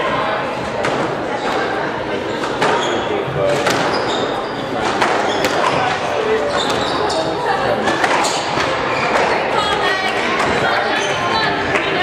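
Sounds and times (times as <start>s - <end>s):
background chatter: 0.0s - 12.0s
squash ball cracks echoing: 3.5s - 4.0s, 7.8s - 10.8s.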